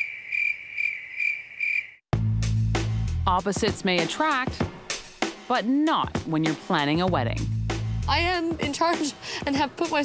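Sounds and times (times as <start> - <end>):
cricket chirping: 0.0 - 2.0.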